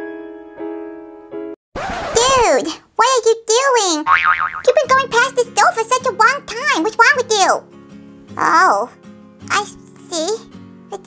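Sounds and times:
background music: 0.0s - 1.5s, 4.8s - 11.0s
cartoon boing: 4.1s - 4.8s.

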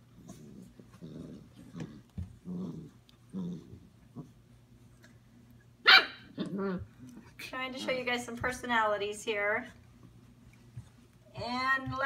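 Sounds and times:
puppy growls: 0.0s - 4.5s, 6.3s - 7.4s
puppy sharp cry: 5.8s - 6.3s.

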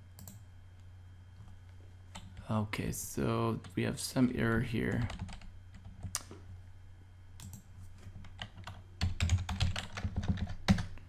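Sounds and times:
computer keyboard typing: 0.2s - 0.4s, 4.9s - 6.2s, 7.4s - 10.9s.

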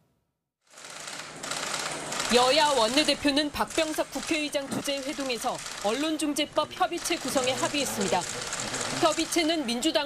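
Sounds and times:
rapid camera shutter clicks: 0.7s - 6.2s, 7.0s - 9.5s.

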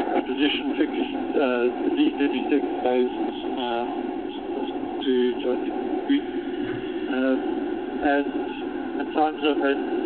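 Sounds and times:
man's voice over phone: 0.0s - 6.3s, 7.1s - 10.0s.

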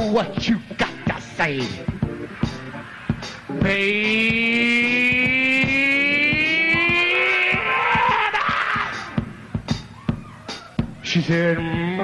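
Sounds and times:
drum hits: 1.1s - 11.0s.

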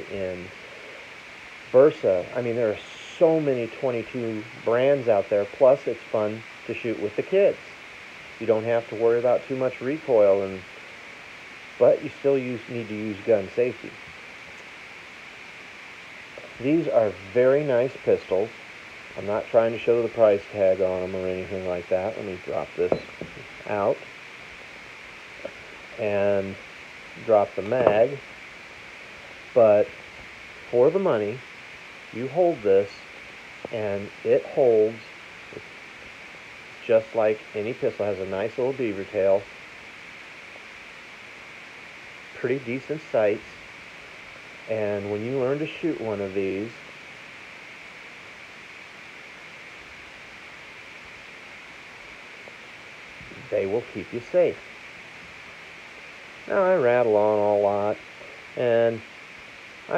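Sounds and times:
low recording hiss: 0.0s - 59.9s.

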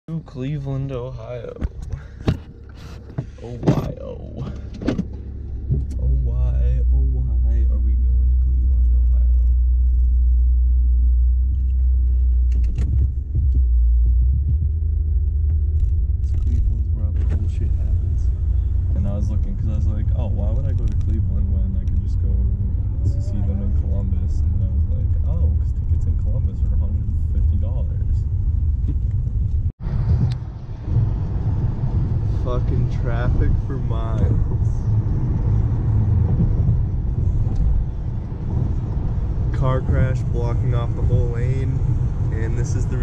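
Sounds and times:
car road and engine noise: 0.1s - 43.0s.

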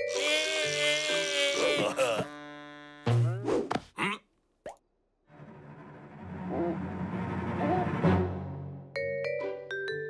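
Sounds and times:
vocal squeak: 0.1s - 3.4s.

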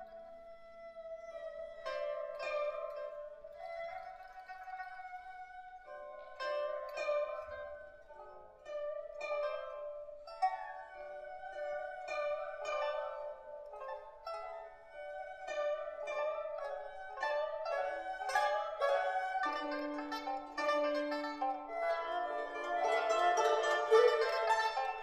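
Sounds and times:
bowed string melody: 0.0s - 25.0s
plucked string notes: 5.9s - 25.0s.

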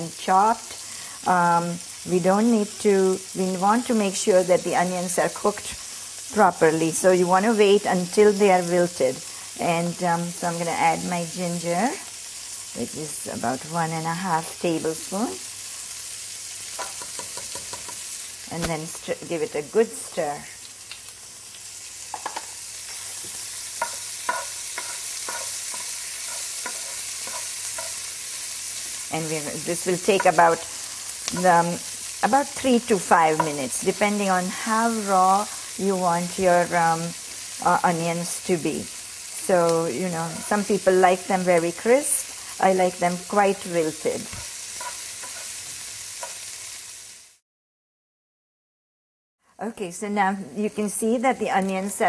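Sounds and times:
food sizzling in hot oil: 0.0s - 47.4s, 50.2s - 52.0s
wooden spoon scraping pan: 22.2s - 28.1s.

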